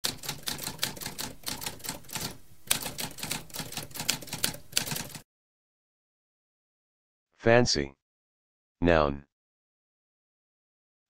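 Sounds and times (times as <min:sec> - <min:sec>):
typewriter typing: 0:00.0 - 0:05.2.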